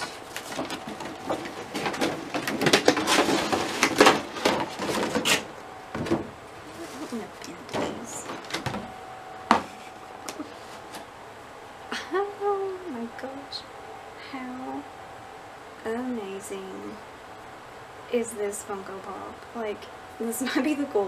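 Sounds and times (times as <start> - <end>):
cardboard packaging rustling: 0.0 - 8.9.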